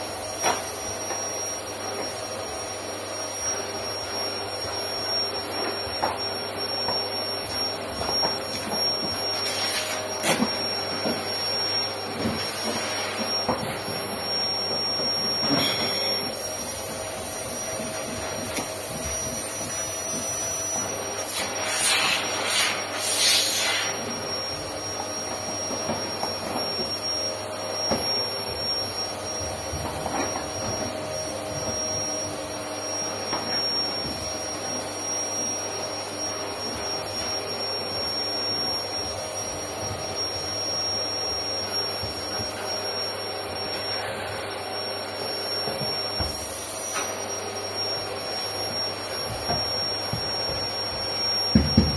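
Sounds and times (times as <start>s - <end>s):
mechanical drone with high whine: 2.7s - 51.9s.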